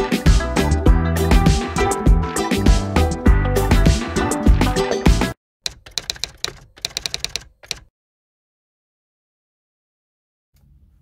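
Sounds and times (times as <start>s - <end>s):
typewriter key clacks: 5.7s - 7.9s.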